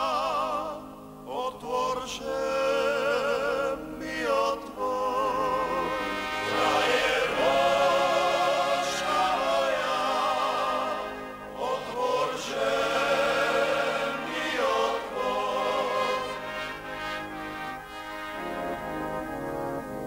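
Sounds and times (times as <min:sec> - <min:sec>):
voices singing folk song: 0:00.0 - 0:18.8.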